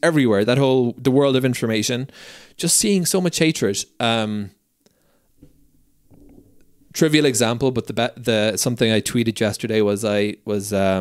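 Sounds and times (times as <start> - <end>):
man speaking: 0.0 - 4.6, 6.9 - 11.0.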